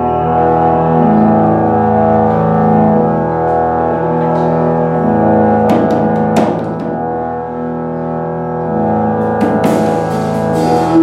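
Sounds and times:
organ chord: 0:00.0 - 0:11.0
tuba low notes: 0:00.0 - 0:11.0.

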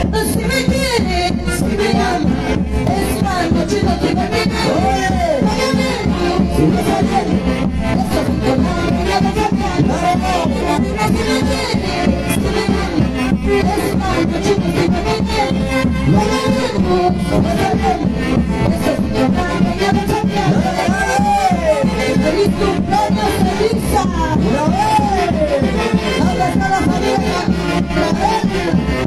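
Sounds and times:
dance band with saxophones: 0:00.0 - 0:29.0.

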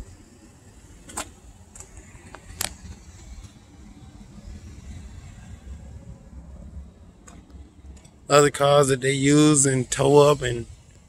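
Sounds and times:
motor vehicle rumbling: 0:00.0 - 0:11.0.

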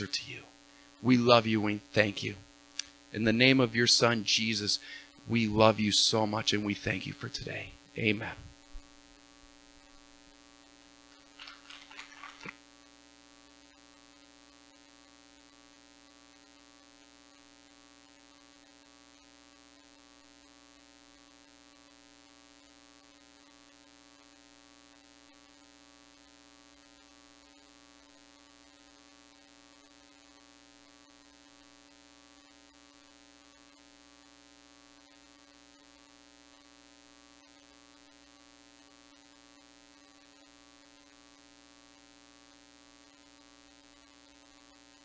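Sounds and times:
faint hiss: 0:00.0 - 0:08.9
electrical hum: 0:00.0 - 0:45.0.

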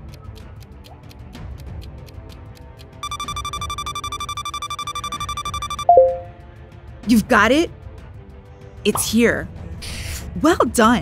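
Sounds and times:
light background music: 0:00.0 - 0:11.0
rapid high beeping alarm: 0:03.0 - 0:06.2
loud timer chime: 0:03.0 - 0:06.3.

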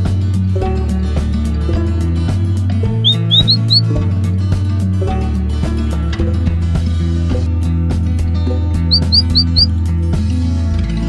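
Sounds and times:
background music with steady beat: 0:00.0 - 0:11.0
rising bird chirps: 0:03.0 - 0:03.9, 0:08.9 - 0:09.7.

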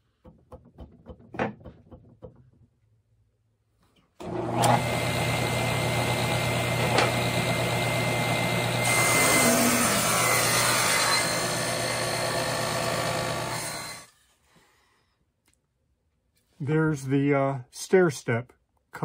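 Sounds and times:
table saw cutting wood: 0:04.2 - 0:14.1.

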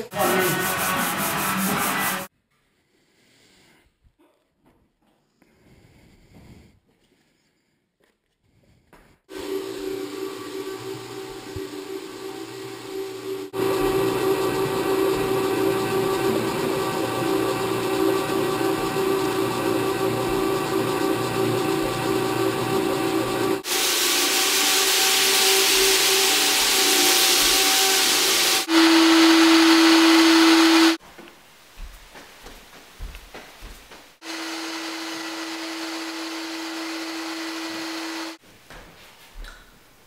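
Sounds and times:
floor buffer motor running: 0:00.0 - 0:02.3, 0:09.3 - 0:31.0, 0:34.2 - 0:38.4
loud hiss: 0:23.6 - 0:31.0.

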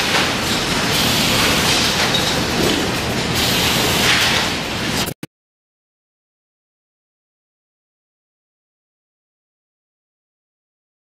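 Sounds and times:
factory machinery running: 0:00.0 - 0:05.2.

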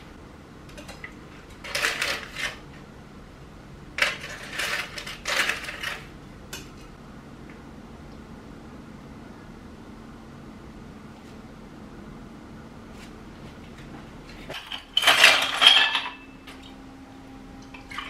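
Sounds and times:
dishes and utensils clinking: 0:14.5 - 0:16.7.

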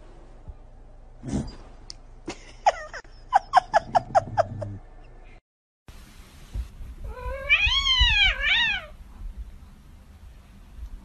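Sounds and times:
kitten meowing: 0:07.1 - 0:08.9.

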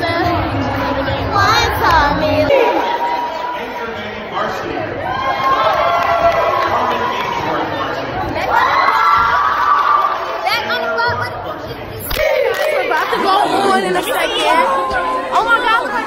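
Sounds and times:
crowd chatter: 0:00.0 - 0:16.0
girls chattering and calling out: 0:08.1 - 0:16.0.

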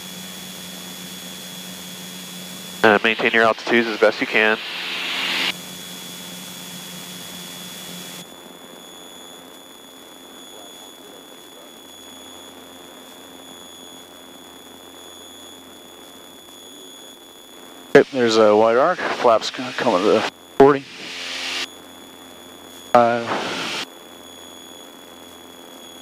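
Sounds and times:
light aircraft engine drone: 0:00.0 - 0:26.0.

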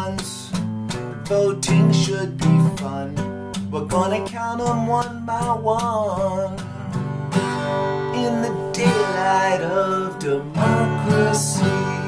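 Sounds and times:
person singing: 0:00.0 - 0:00.5, 0:01.2 - 0:07.1, 0:08.0 - 0:12.0
acoustic guitar strumming: 0:00.0 - 0:12.0.

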